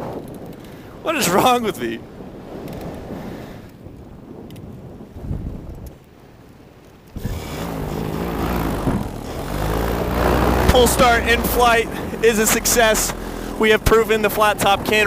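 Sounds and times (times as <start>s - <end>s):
wind noise: 0.0s - 15.0s
two-stroke engine running: 7.2s - 15.0s.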